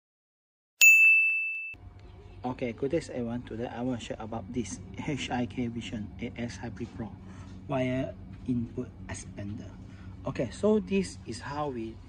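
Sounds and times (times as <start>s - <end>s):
bright chime ding: 0.8s - 1.8s.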